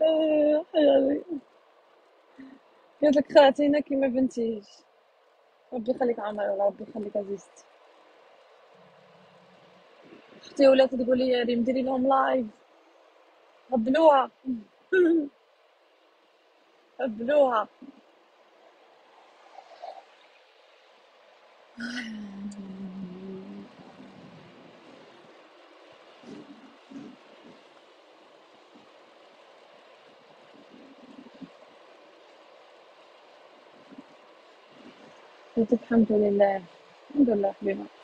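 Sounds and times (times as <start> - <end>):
woman's voice: 0.0 - 1.4, 2.4 - 4.8, 5.7 - 7.6, 10.4 - 12.5, 13.7 - 15.3, 17.0 - 17.9, 21.8 - 24.2, 35.6 - 38.0
faint hiss: 0.0 - 38.0
faint rushing background noise: 0.0 - 38.0.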